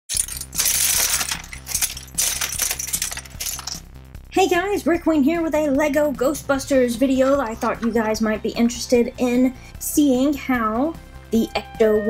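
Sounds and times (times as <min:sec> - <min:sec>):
plastic bricks clattering: 0:00.1 - 0:03.8.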